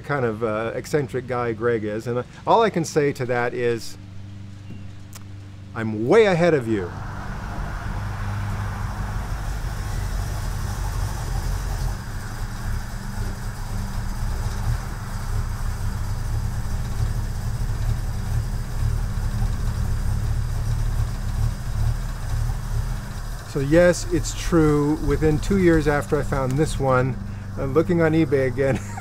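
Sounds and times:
car engine idling: 2.2 - 29.0.

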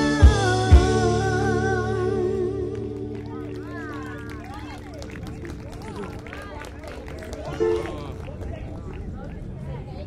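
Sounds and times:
people talking: 3.3 - 10.0.

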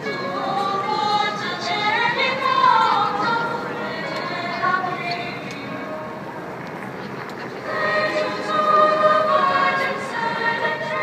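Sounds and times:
girls' choir singing: 0.0 - 5.8, 7.6 - 11.0.

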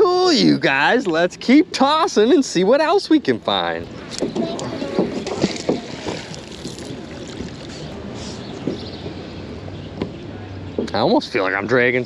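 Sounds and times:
rope hauled through water: 3.9 - 8.5
splashy knocks in water: 4.2 - 7.5.

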